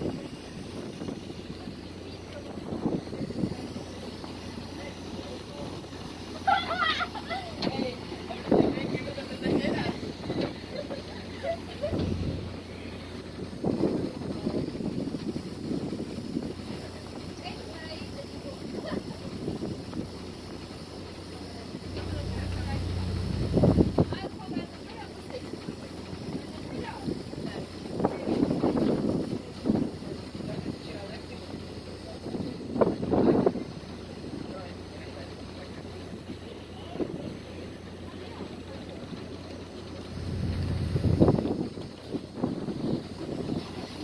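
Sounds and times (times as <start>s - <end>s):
boat engine humming: 0.0s - 44.0s
wind buffeting microphone: 0.0s - 44.0s.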